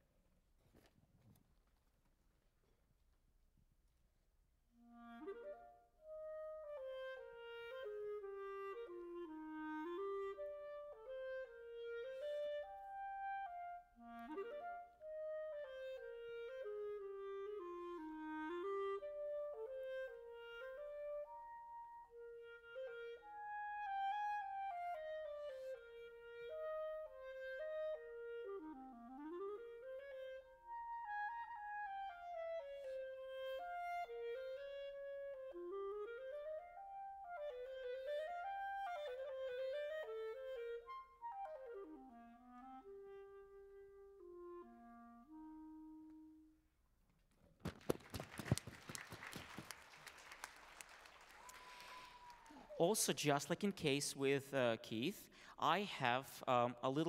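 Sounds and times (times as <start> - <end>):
solo clarinet melody: 4.7 - 46.9
audience applause: 47.7 - 52.8.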